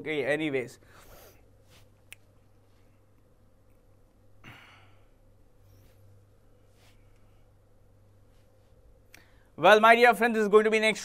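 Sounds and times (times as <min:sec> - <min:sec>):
low steady hum: 0:00.0 - 0:11.0
man sighing: 0:04.4 - 0:05.1.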